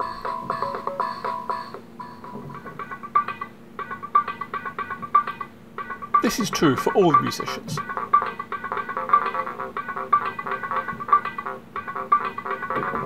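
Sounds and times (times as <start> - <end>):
plucked guitar-like music loops: 0.0 - 13.0.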